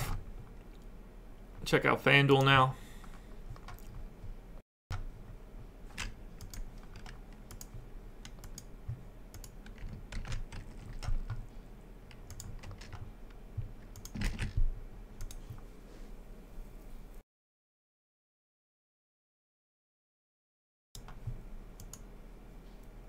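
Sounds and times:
faint low hum: 0.0 - 17.2, 21.0 - 23.0
computer keyboard typing: 3.5 - 4.0, 6.0 - 11.4, 12.1 - 13.1, 13.9 - 15.4.

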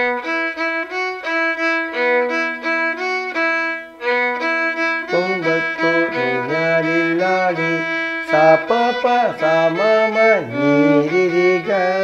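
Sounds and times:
solo violin bowed: 0.0 - 12.0.

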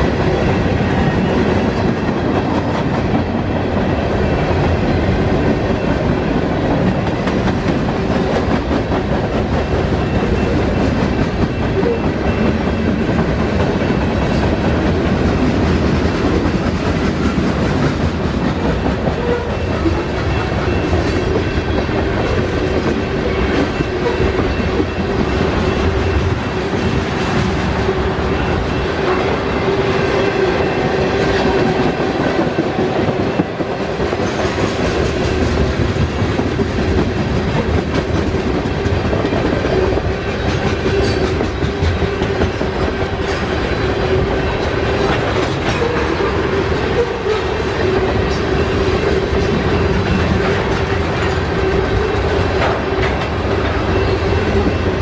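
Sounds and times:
freight train wheels on rail: 0.0 - 55.0.

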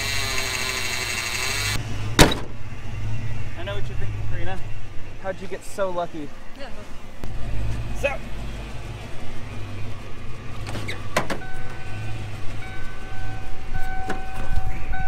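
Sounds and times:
car warning chime beeping: 11.4 - 15.0.

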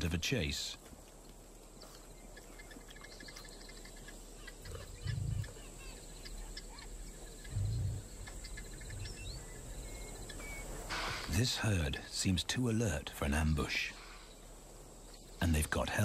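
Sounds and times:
insects chirping: 0.0 - 16.0
small birds chirping: 0.0 - 16.0
soft low thuds: 7.5 - 10.6.

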